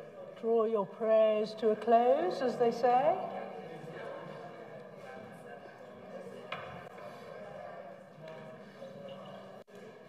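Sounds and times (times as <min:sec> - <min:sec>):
murmur of people praying: 0:00.0 - 0:10.0.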